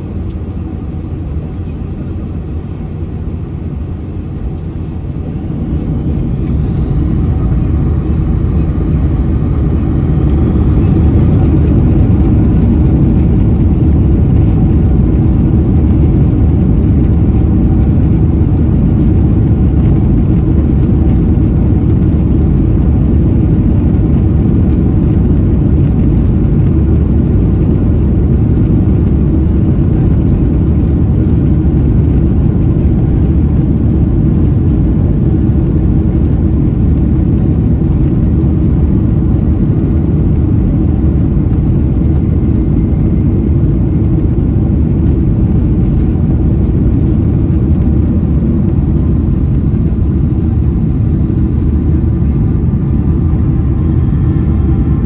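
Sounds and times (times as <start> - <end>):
jet engines deep rumble: 0.0 - 55.0.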